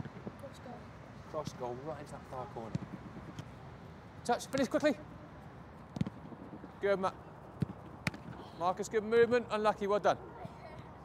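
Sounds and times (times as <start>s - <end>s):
faint background noise: 0.0s - 11.0s
football kick: 5.9s - 6.3s, 7.6s - 8.4s.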